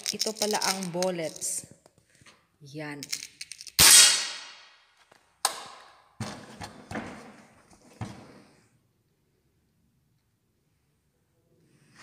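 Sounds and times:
air rifle shots: 0:03.8 - 0:04.6.

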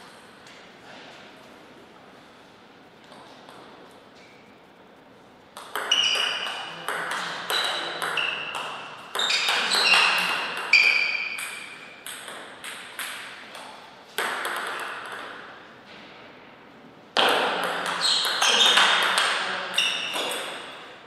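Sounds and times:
table tennis ball hits: 0:05.6 - 0:15.6, 0:17.2 - 0:20.9.

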